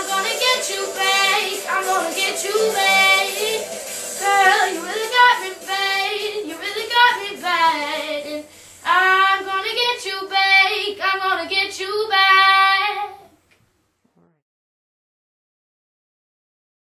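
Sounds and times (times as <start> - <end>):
girl singing: 0.0 - 13.4.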